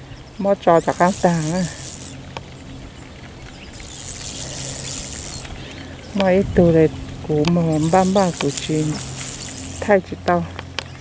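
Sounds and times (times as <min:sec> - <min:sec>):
steady low hum: 0:00.0 - 0:11.0
fishing reel whirring: 0:00.7 - 0:02.3, 0:03.3 - 0:06.2, 0:07.0 - 0:10.0.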